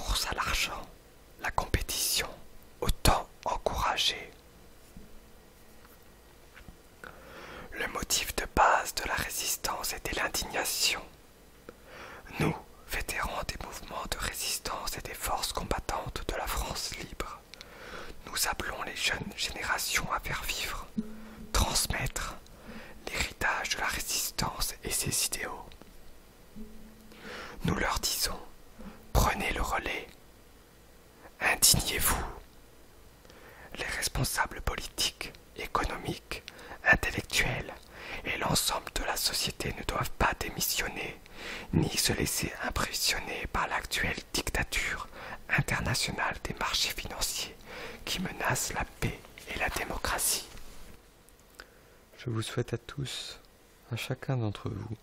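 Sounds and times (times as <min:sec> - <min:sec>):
person whispering: 0:00.0 - 0:04.4, 0:07.7 - 0:11.2, 0:12.2 - 0:17.5, 0:18.2 - 0:25.8, 0:26.6 - 0:30.2, 0:31.2 - 0:32.5, 0:33.7 - 0:50.6.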